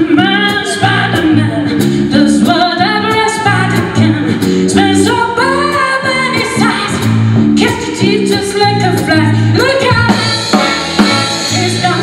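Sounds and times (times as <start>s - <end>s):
bass notes: 0.0s - 12.0s
woman singing blues: 0.0s - 12.0s
drum and cymbal strokes: 9.0s - 12.0s.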